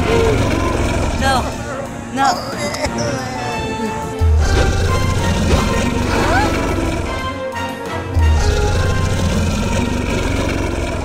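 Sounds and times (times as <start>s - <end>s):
dinosaur growl: 0.0s - 7.3s, 8.2s - 11.0s
music: 0.0s - 11.0s.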